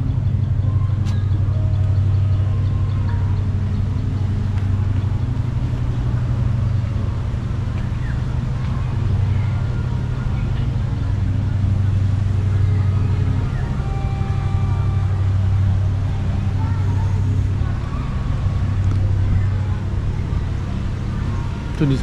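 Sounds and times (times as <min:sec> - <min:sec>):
faint voices: 0:00.0 - 0:22.0
low engine hum: 0:00.0 - 0:22.0.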